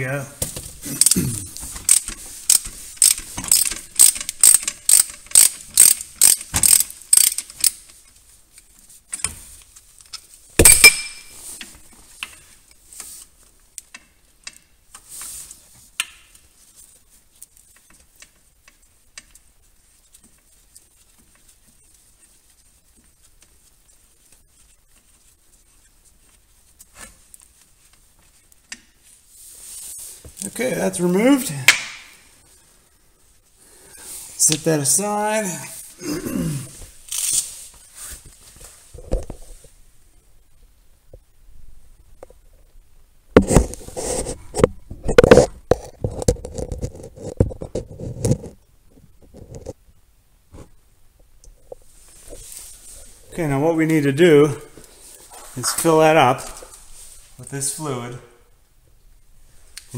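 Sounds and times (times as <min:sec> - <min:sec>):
ratchet wrench clicking: 0:01.9 - 0:07.8.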